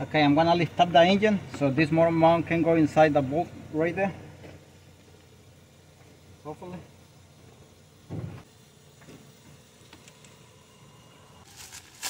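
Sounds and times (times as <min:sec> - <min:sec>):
plastic bag crinkling: 0:11.5 - 0:12.0.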